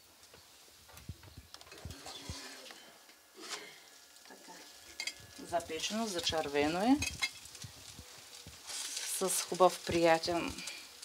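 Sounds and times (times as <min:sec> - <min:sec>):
dough sizzling: 0:00.0 - 0:11.0.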